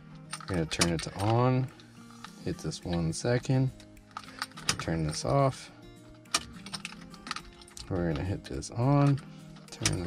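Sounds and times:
key turning in ignition switch: 6.1s - 10.0s.

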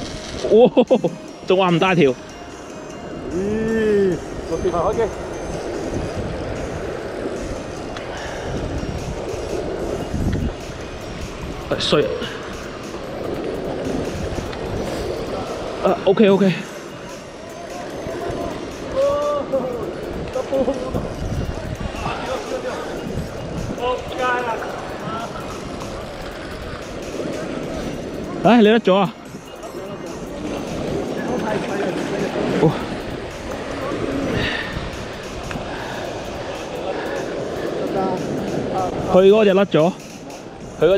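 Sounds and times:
wind rumble on microphone: 3.2s - 16.2s, 18.0s - 28.5s, 30.1s - 39.3s
waves washing on rocks: 4.3s - 40.9s.

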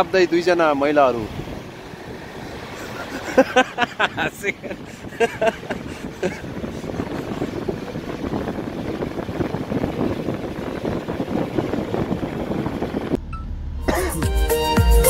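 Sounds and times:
vehicle road and engine rumble: 0.0s - 15.0s
wind noise: 1.2s - 14.1s.

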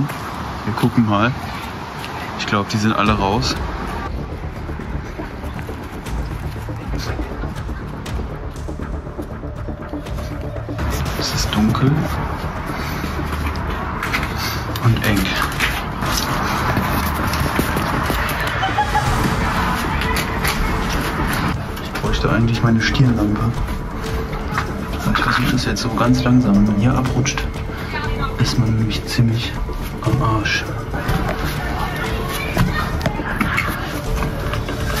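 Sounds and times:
background music: 1.8s - 35.0s.

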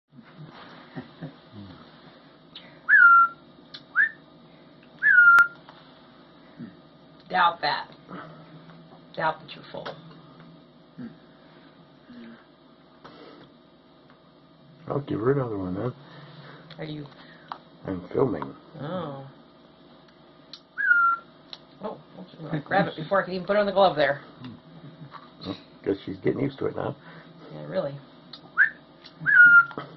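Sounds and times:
young hawk whistled calls: 2.9s - 3.4s, 5.0s - 5.6s, 20.8s - 21.3s.

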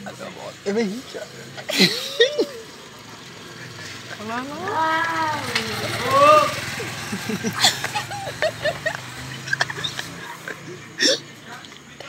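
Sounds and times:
drawn-out voice call: 3.6s - 8.2s.

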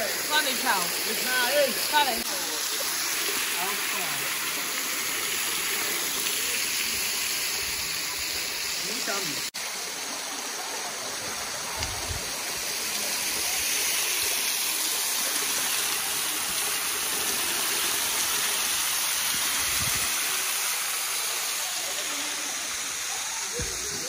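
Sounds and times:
waterfall rushing into pool: 0.0s - 24.0s.

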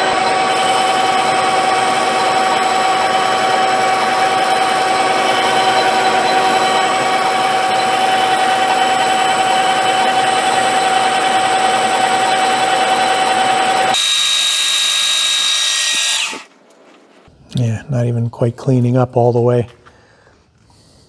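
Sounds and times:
metal lathe whining: 0.0s - 16.5s.

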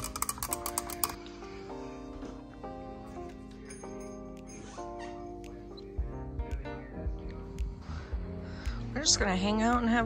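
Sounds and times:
stir stick clicking in mug: 0.0s - 1.2s
background music with held notes: 0.0s - 10.0s.

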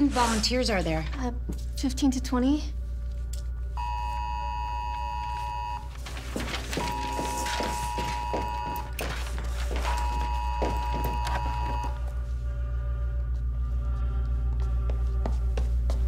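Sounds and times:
knocks and rustling: 6.0s - 11.9s
low steady drone: 12.0s - 15.9s.

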